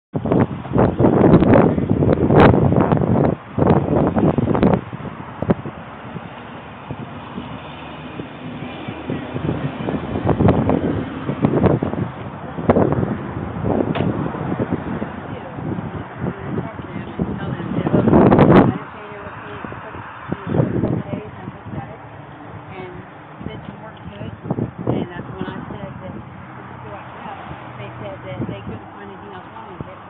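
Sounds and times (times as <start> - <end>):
wind noise on microphone: 0.1 - 30.0
indistinct voices: 8.3 - 30.0
microphone rustling: 8.9 - 26.5.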